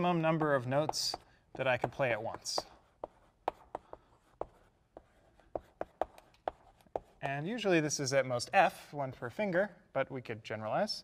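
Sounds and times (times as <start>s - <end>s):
chalk tapping on blackboard: 0.0s - 7.3s.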